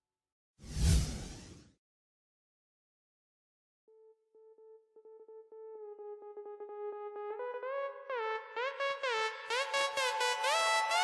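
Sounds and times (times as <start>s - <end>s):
whoosh with low boom: 0.7s - 1.6s.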